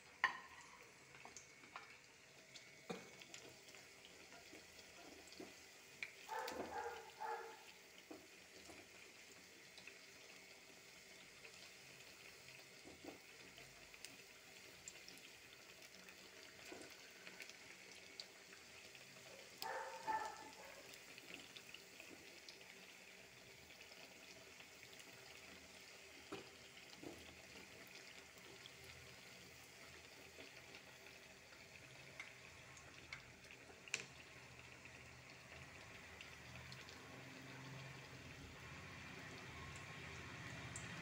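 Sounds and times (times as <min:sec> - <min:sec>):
batter sizzling in hot oil: 0:00.0 - 0:41.0.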